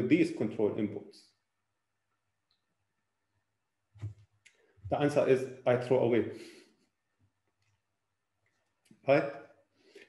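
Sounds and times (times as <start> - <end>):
man speaking: 0.0 - 1.2, 4.9 - 6.6, 9.1 - 9.4.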